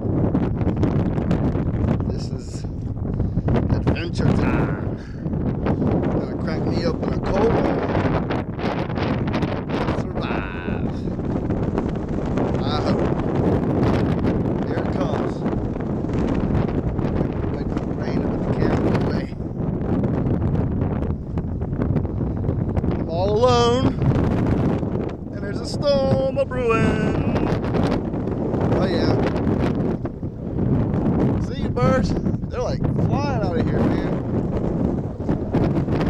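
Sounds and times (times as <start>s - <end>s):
wind buffeting microphone: 0.0s - 36.0s.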